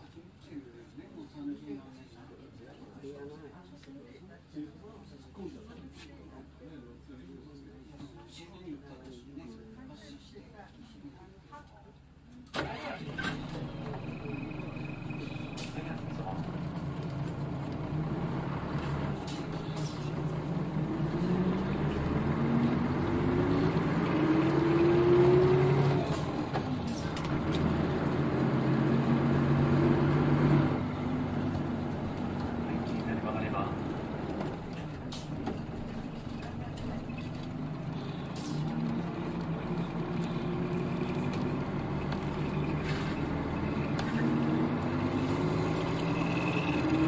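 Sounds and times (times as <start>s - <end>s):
bus diesel engine accelerating: 12.5s - 47.0s.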